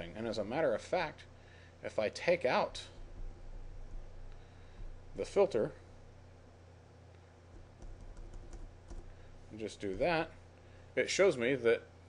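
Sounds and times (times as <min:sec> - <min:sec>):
keyboard keys tapping: 0:07.5 - 0:09.2.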